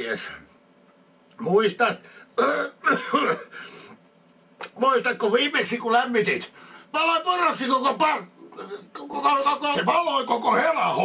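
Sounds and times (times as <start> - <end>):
man clearing his throat: 2.4 - 3.6.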